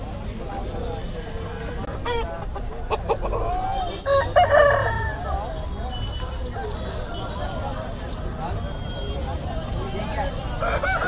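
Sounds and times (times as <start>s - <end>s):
rooster crowing: 10.6s - 11.0s.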